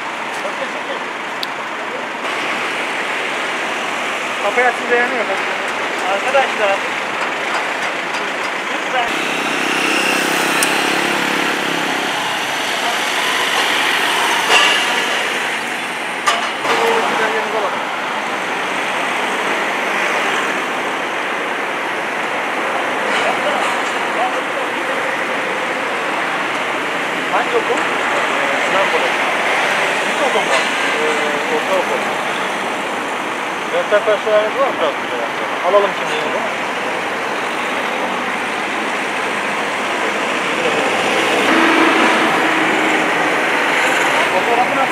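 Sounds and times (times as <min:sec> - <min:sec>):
road traffic noise: 0:00.0 - 0:44.9.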